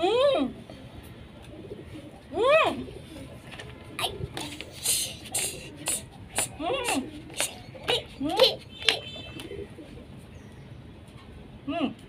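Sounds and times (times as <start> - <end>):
muffled closed-mouth vocal sounds: 4.0 - 8.6.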